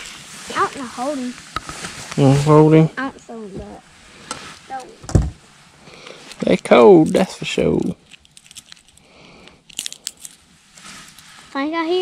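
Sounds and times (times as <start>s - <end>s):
faint rustling and crackling: 0.0s - 12.0s.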